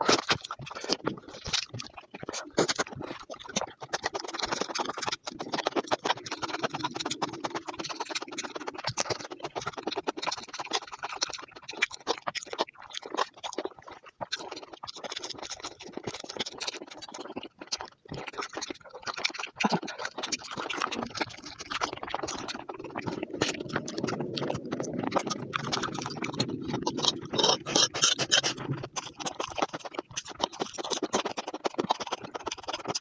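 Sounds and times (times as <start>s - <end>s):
chewing crunches: 0.0s - 33.0s.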